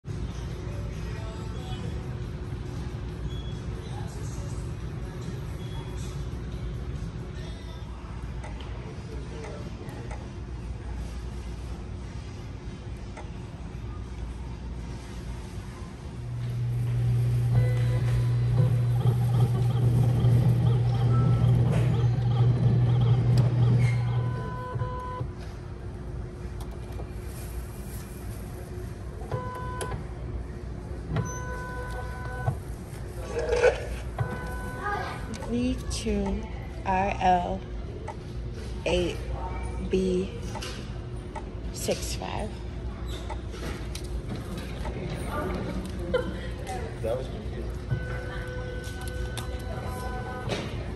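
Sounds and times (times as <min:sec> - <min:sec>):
loud steady low hum: 0:00.0 - 0:50.9.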